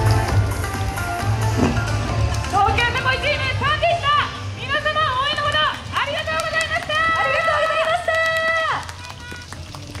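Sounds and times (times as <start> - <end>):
scattered claps: 0.3 - 2.6, 5.2 - 10.0.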